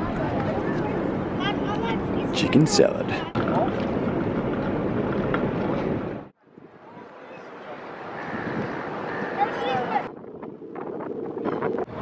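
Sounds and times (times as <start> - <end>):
harbourside ambience: 0.0 - 12.0
wind rumbling on microphone: 3.0 - 12.0.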